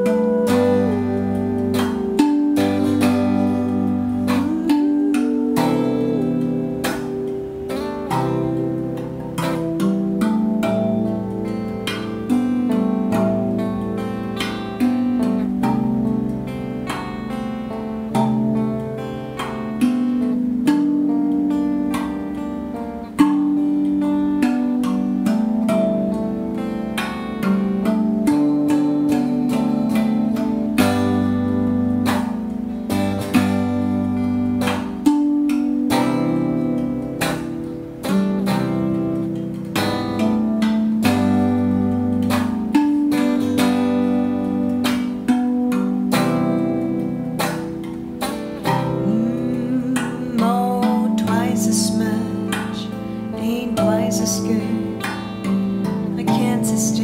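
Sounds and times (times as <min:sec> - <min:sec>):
clean electric guitar: 0:00.0 - 0:57.0
steel tongue drum struck by hand: 0:00.0 - 0:57.0.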